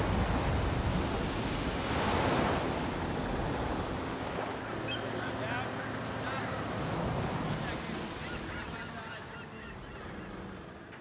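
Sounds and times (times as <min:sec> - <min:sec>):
wind buffeting microphone: 0:00.0 - 0:04.6.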